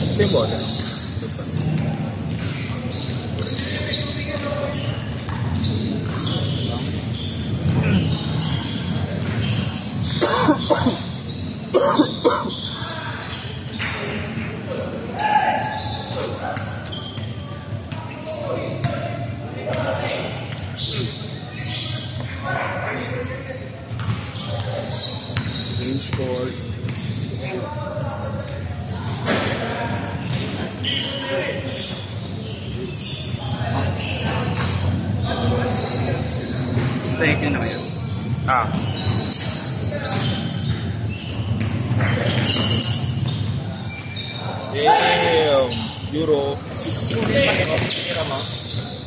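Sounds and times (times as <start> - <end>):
sneakers squeaking: 0.0 - 49.0
voices in background: 0.0 - 49.0
basketball bouncing on court: 4.3 - 6.6, 23.9 - 26.2, 26.8 - 27.3
basketball bouncing: 5.2 - 6.3, 23.9 - 24.4, 25.4 - 25.6, 26.8 - 27.1.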